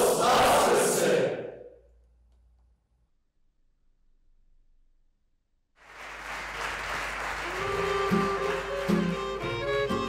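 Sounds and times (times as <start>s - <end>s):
group of voices calling out: 0.0s - 1.5s
hall echo: 0.0s - 2.0s.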